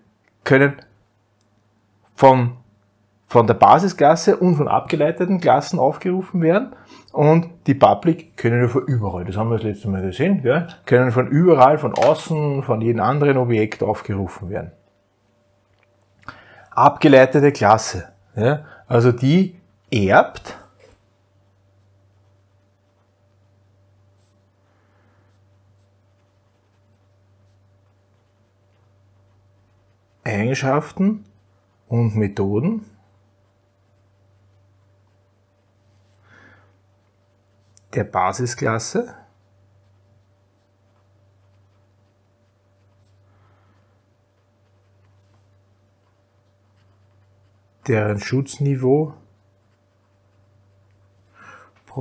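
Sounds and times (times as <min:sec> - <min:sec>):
person speaking: 0:02.0 - 0:14.9, 0:15.6 - 0:24.6, 0:25.4 - 0:43.3, 0:44.0 - 0:52.0
pen scratching on paper: 0:21.6 - 0:24.6, 0:25.3 - 0:32.0, 0:33.1 - 0:36.2, 0:39.3 - 0:43.3, 0:44.0 - 0:48.6, 0:49.2 - 0:51.4.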